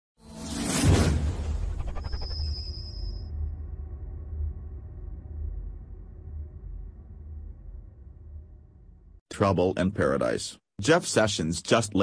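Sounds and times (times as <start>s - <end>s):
whoosh: 0.2s - 8.4s
low drone of intro music: 0.2s - 9.2s.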